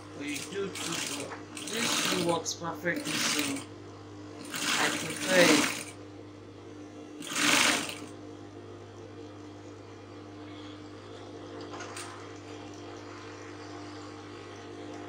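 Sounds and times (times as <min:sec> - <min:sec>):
sewing machine motor hum: 0:00.0 - 0:03.7, 0:04.3 - 0:06.0, 0:07.1 - 0:08.3.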